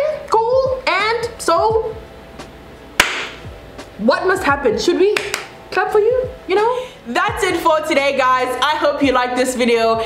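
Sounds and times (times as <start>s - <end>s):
sharp smack: 3.0s - 3.5s.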